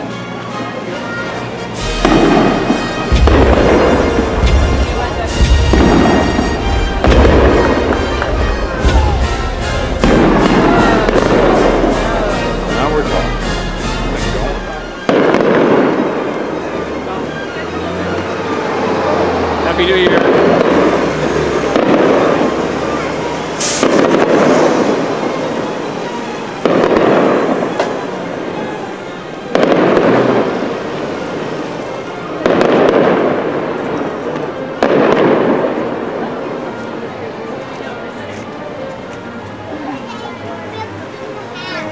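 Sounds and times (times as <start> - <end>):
fireworks booming overhead: 1.7 - 38.2.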